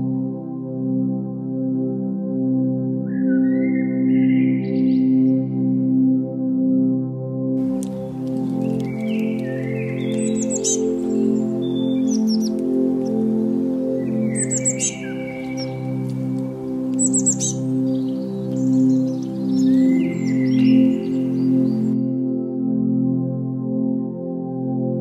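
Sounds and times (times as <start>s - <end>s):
soft ambient music: 0.0s - 25.0s
songbirds chirping: 7.6s - 22.2s.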